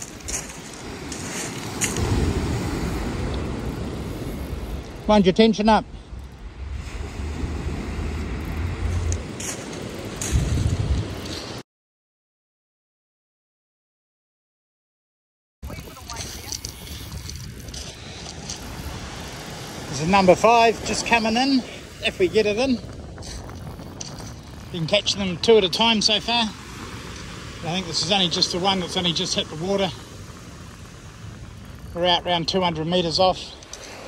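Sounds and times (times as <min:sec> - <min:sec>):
surf breaking on shingle: 0:00.0 - 0:03.3
wind noise on microphone: 0:00.0 - 0:05.1, 0:05.8 - 0:11.6, 0:15.6 - 0:34.0
surf breaking on shingle beach: 0:00.0 - 0:05.2, 0:06.7 - 0:11.6, 0:15.6 - 0:34.0.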